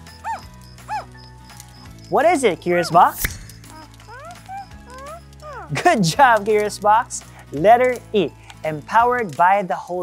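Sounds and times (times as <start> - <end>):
soft background music: 0.0 - 10.0
cartoon voice squeaky chirps: 0.2 - 1.2, 2.8 - 5.8.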